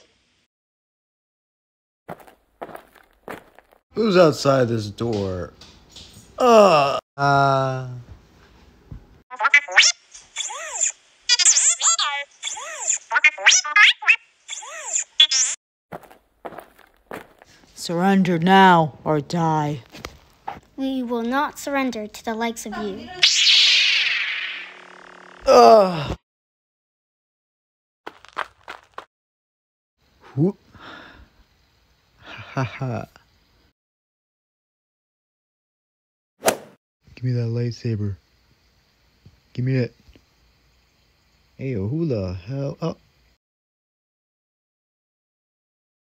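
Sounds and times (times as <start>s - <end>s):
robot beeps and chirps: 9.3s - 15.6s, 23.2s - 25.5s
sharp hit sound effects: 23.2s - 25.5s.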